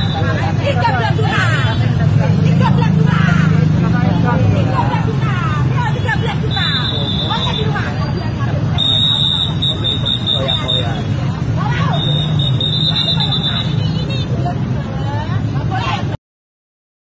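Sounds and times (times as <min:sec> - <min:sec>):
motorcycle engines running: 0:00.0 - 0:16.2
road traffic: 0:00.0 - 0:16.2
voices arguing: 0:00.0 - 0:16.2.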